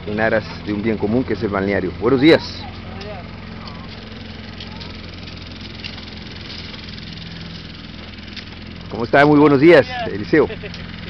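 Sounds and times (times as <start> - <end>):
faint distant voices: 0.0 - 8.2
distant engine drone: 0.0 - 11.0.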